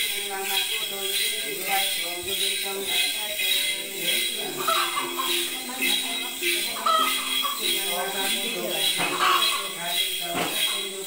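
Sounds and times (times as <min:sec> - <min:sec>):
jingle bells shaken: 0:00.0 - 0:11.0
woman chanting: 0:00.1 - 0:11.0.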